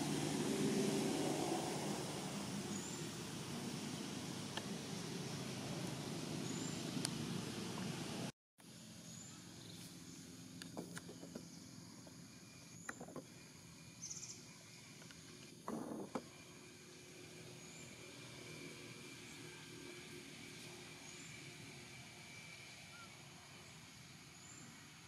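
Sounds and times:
steady noisy hiss: 0.0s - 25.0s.

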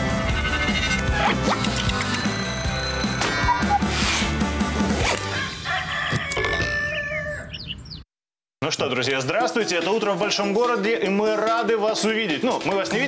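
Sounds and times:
tv show theme music: 0.0s - 6.0s
alarm clock bell ringing: 2.0s - 3.2s.

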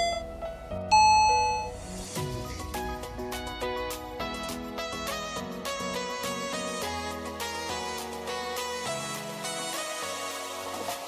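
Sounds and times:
bright chime: 0.0s - 0.3s, 0.9s - 1.8s
background music with a beat: 0.0s - 11.0s.

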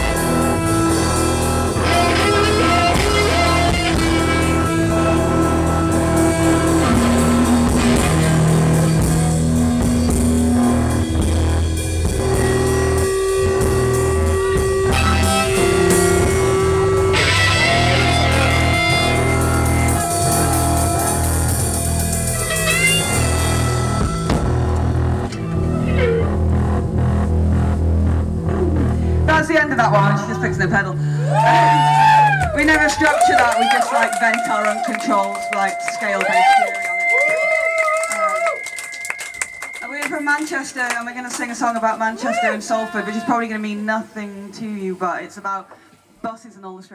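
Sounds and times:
rock band playing: 0.0s - 42.1s
electric guitar: 0.0s - 43.5s
drums: 0.0s - 44.2s.

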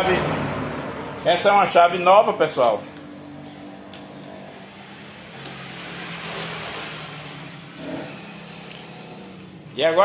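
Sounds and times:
steady low engine hum: 0.0s - 10.0s
vehicle passing by: 0.0s - 10.0s.

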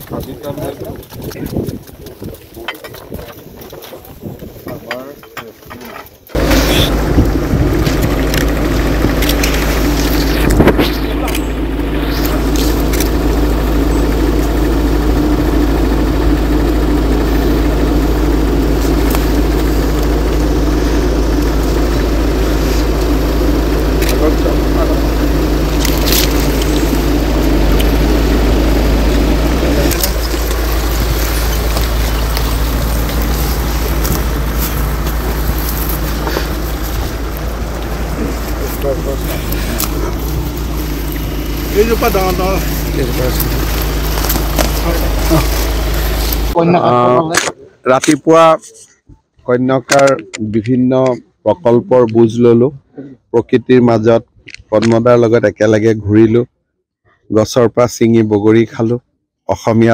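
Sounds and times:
indistinct voices: 4.6s - 16.6s, 17.2s - 55.6s
loud low rumble: 6.3s - 47.0s.

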